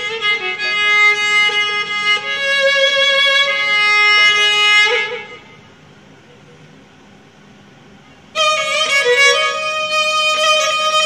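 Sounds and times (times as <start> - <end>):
solo violin improvising: 0.0 - 5.5, 8.3 - 11.0.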